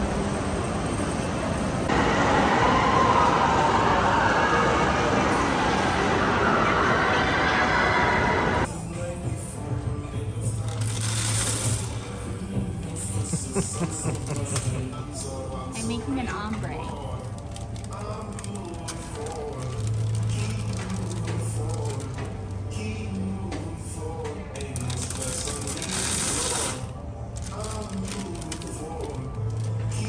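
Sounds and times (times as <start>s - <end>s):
background music: 5.3s - 30.0s
candies rattling into plastic bag: 16.8s - 22.9s, 24.6s - 30.0s.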